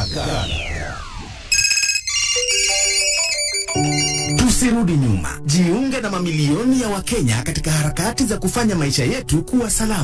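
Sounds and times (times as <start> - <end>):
electronic jingle: 0.0 - 4.7.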